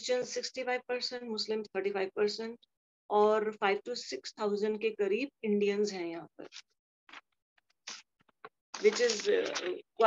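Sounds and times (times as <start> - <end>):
woman speaking: 0.0 - 6.6.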